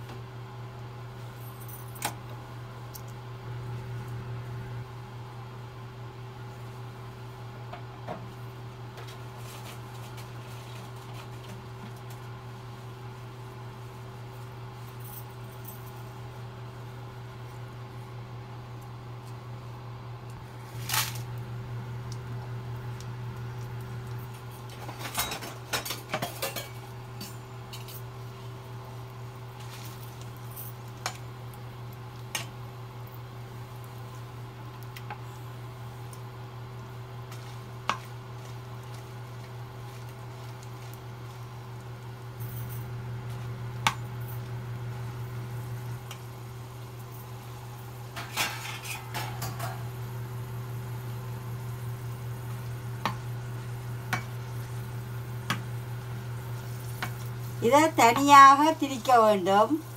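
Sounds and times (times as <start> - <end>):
steady low hum: 0.0 - 59.9
metal skimmer scraping frying pan: 48.2 - 49.8.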